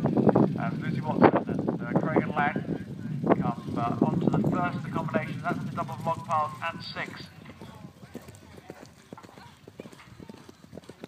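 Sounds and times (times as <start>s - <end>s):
horse hoofbeats on turf: 4.6s - 11.0s.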